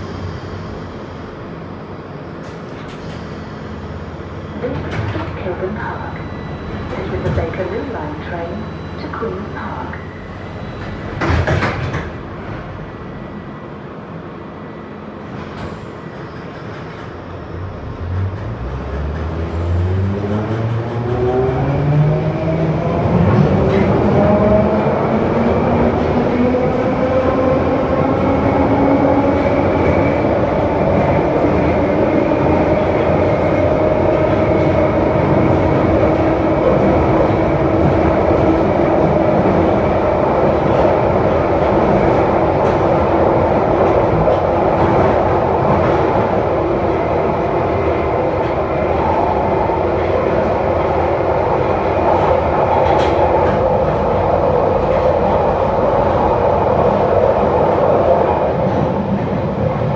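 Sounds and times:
train wheels rumbling on rails: 2.3 - 13.4, 15.2 - 59.9.

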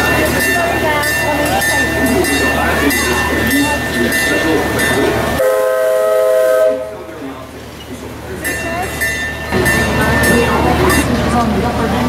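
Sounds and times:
background chatter: 0.0 - 12.0
steam whistle chord: 5.4 - 7.0.

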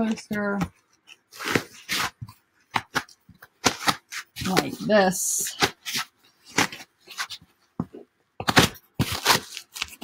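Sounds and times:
foam rubbing and rustling: 1.1 - 3.0, 3.6 - 7.4.

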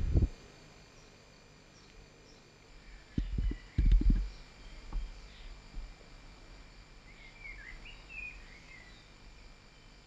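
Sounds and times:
quiet outdoor ambience: 0.0 - 10.0
faint bird song: 0.4 - 10.0.

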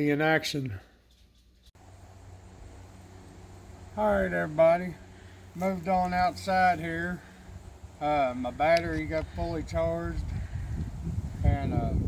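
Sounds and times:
open air background noise: 0.0 - 12.0
low hum: 1.7 - 11.4.

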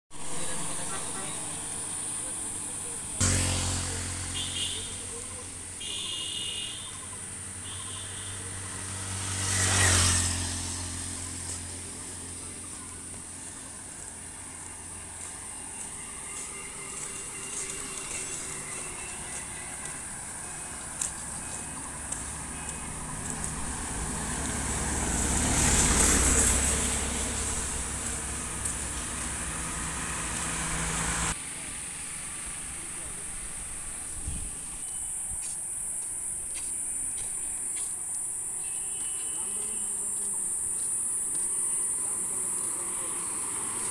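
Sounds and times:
vehicles passing by: 0.1 - 43.9.

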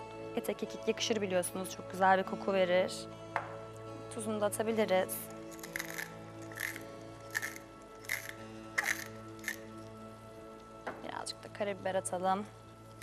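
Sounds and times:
background music: 0.0 - 13.0
wooden salt mill grinding: 5.4 - 9.9.

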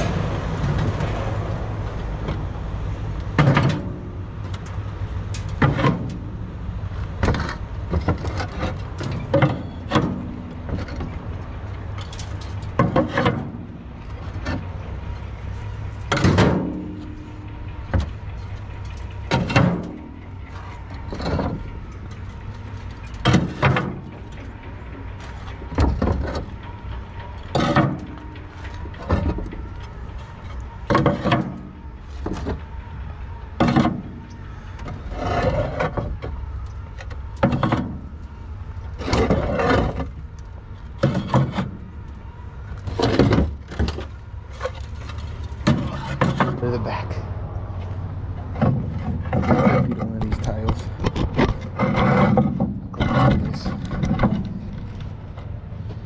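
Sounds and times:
roof tiles clacking in wheelbarrow: 3.2 - 6.4, 7.0 - 32.7, 33.6 - 38.2, 38.8 - 42.1, 42.8 - 47.2, 48.4 - 55.4.

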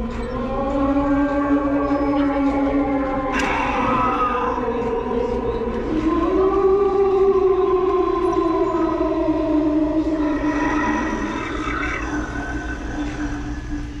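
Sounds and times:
ghostly moan: 0.0 - 14.0.

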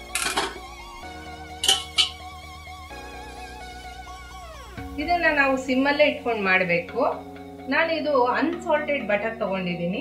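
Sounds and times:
instrumental background music: 0.0 - 10.0
metal plate clinking on pan: 0.1 - 0.6, 1.6 - 2.2.

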